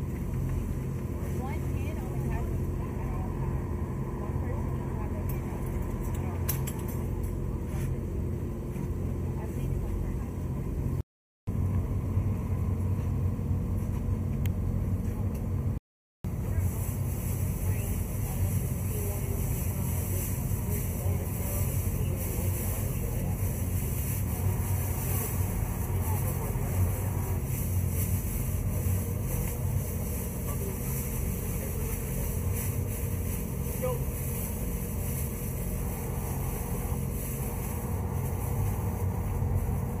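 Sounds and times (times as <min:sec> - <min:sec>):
engine running low rumble: 0:00.0 - 0:40.0.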